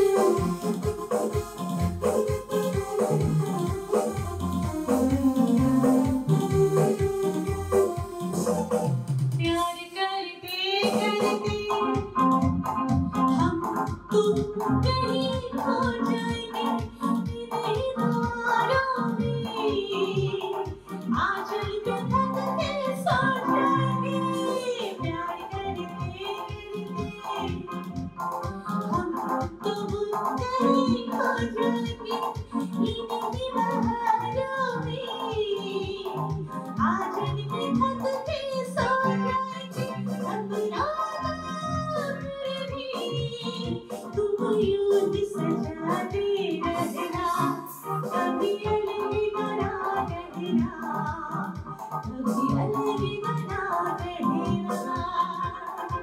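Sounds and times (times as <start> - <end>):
steady bass beat: 0.0 - 9.6, 10.8 - 24.4, 25.0 - 31.1, 32.4 - 38.1, 38.8 - 56.0
electronic keyboard organ chords: 0.0 - 9.7, 10.7 - 56.0
woman singing: 5.1 - 7.7, 9.4 - 27.9, 28.6 - 56.0.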